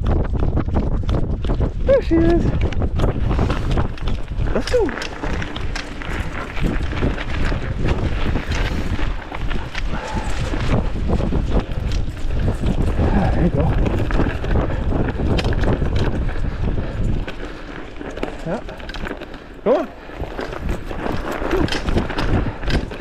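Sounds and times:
bike clicking and rattling: 0.0s - 23.0s
wind rumble on microphone: 0.0s - 23.0s.

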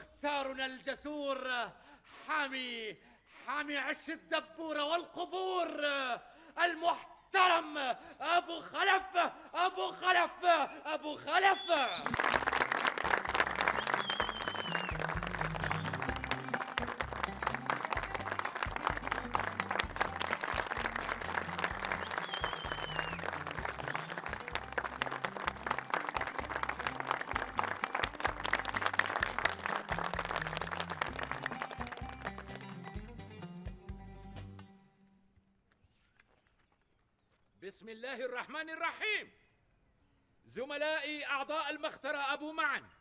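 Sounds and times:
crowd clapping: 11.9s - 33.2s
music with low beat: 13.1s - 34.6s.

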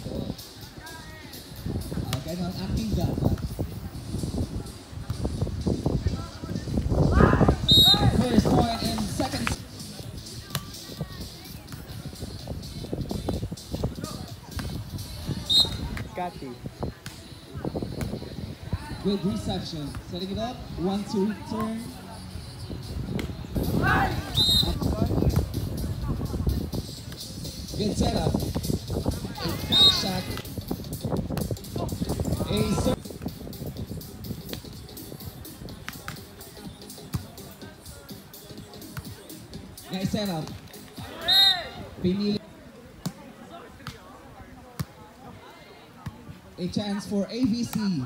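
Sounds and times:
voices shouting: 23.5s - 24.8s, 29.2s - 30.4s, 41.0s - 42.0s
faint distant voices: 40.9s - 48.0s.

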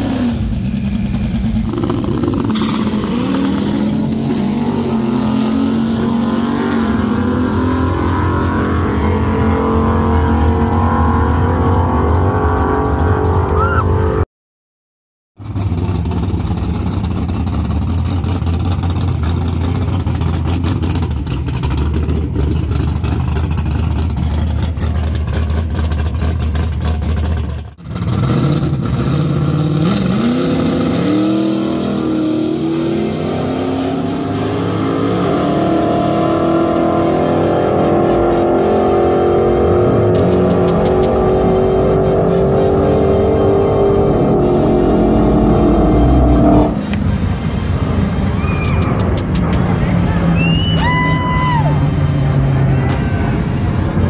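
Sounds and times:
car accelerating away: 0.0s - 14.2s, 15.4s - 54.0s
rough engine humming: 0.0s - 14.2s, 15.4s - 54.0s.

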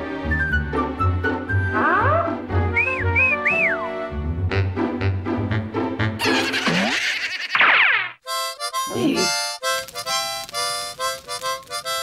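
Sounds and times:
bouncy cartoon music: 0.1s - 12.0s
whistled phrase: 2.2s - 4.0s.

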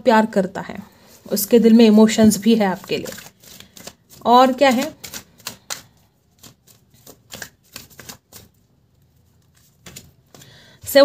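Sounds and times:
cards being shuffled: 2.2s - 10.5s.

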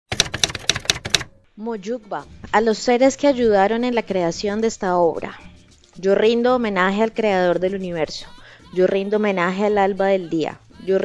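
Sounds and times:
typewriter keys clacking: 0.1s - 1.3s.

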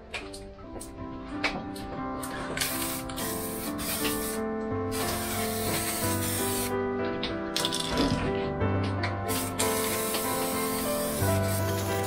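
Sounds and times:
background music: 0.0s - 12.0s
spray paint can hissing: 2.6s - 6.7s, 9.3s - 12.0s.

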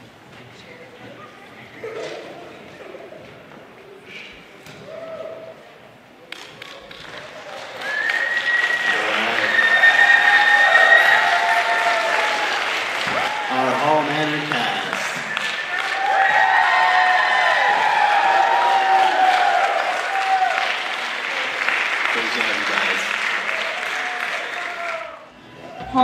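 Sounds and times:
audience applause: 6.3s - 25.4s
high-pitched yells and cheers: 7.8s - 14.0s, 15.2s - 21.0s, 23.5s - 26.0s.

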